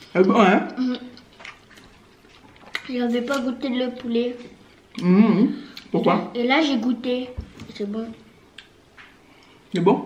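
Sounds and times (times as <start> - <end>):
wet chewing sounds: 0.0 - 5.1.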